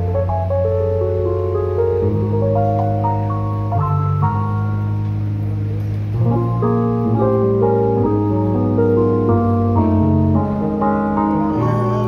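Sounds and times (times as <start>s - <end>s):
bass guitar: 0.0s - 12.0s
electric guitar: 0.0s - 12.0s
electric keyboard chords: 0.0s - 12.0s.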